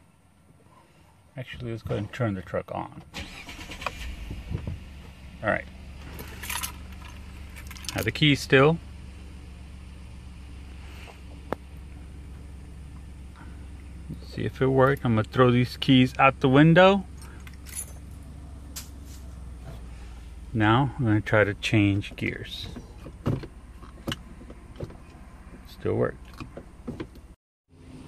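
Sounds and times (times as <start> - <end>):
engine idling hum: 0.0 - 28.0
keys jangling on a keyring: 6.2 - 8.1, 17.2 - 18.2.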